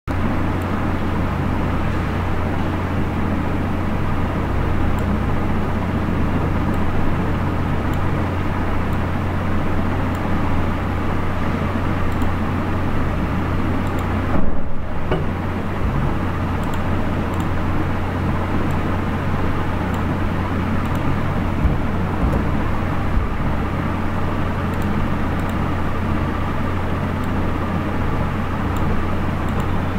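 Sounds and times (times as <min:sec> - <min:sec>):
low hum: 0:00.1 - 0:29.9.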